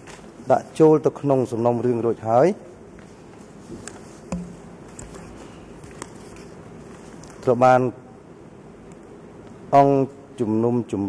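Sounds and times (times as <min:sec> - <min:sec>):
papers rustling at microphone: 0:02.9 - 0:07.6.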